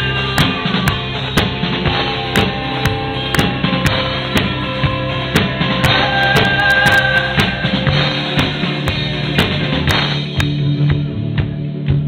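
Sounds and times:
drum kit beat: 0.0s - 12.0s
electric guitar: 0.0s - 12.0s.

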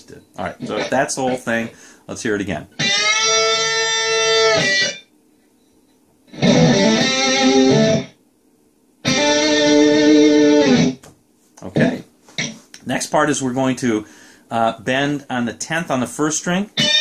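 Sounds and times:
electric guitar lead lick: 0.6s - 1.7s, 2.8s - 5.0s, 6.3s - 8.2s, 9.0s - 11.0s, 16.8s - 17.0s.

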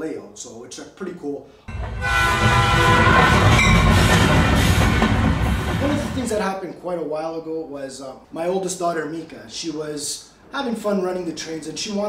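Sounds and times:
train horn: 1.7s - 6.3s
moving train rumble: 1.7s - 6.4s.

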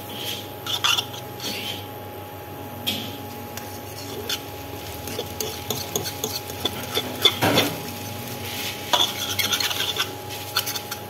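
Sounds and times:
utensil scraping a wok: 0.1s - 1.9s, 3.6s - 11.0s
faint sizzle: 3.3s - 11.0s.

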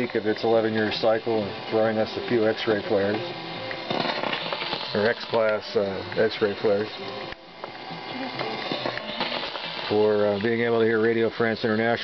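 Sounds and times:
radio hiss: 0.0s - 12.0s
static crackles: 0.0s - 12.0s.

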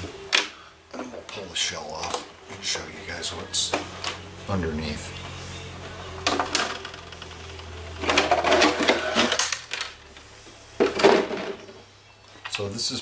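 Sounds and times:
steady low hum: 0.0s - 13.0s
plastic rattling and clatter: 8.0s - 10.0s, 10.8s - 11.8s.

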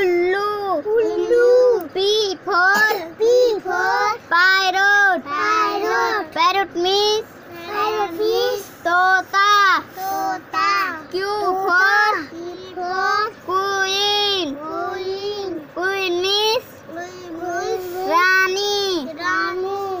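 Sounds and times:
child singing in a sing-song chant: 0.0s - 6.8s, 7.5s - 16.0s, 16.8s - 20.0s.

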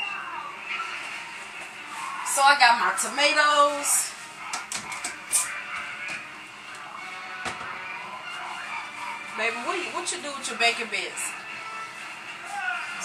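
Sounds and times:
television music with voices: 0.0s - 13.0s.

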